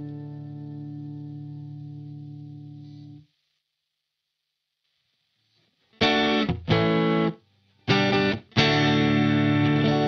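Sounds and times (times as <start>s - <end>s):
electric guitar chord ringing: 7.9s - 10.0s.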